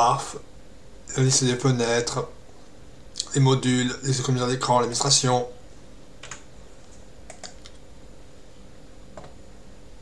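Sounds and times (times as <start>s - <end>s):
computer mouse clicks: 7.3s - 7.8s.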